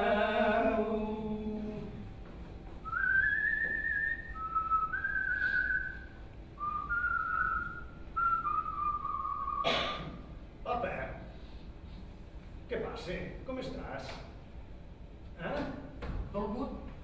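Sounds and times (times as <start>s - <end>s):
person whistling a tune: 2.8s - 9.7s.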